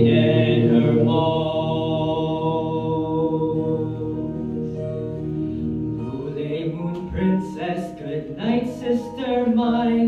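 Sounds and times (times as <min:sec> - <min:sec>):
lullaby music: 0:00.0 - 0:10.0.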